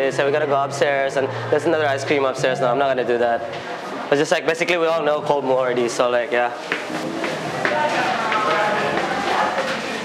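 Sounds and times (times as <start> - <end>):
chatter of people talking: 0.0 - 10.0.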